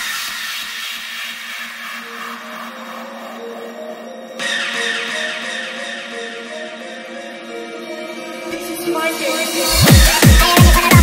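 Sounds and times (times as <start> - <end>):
bright synth layer: 1.6 - 10.9
held synth chords: 1.7 - 11.0.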